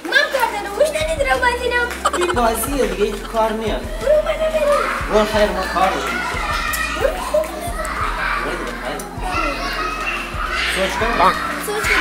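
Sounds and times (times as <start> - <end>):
background music: 0.0 - 12.0
child talking: 0.1 - 4.9
child laughing: 2.0 - 4.2.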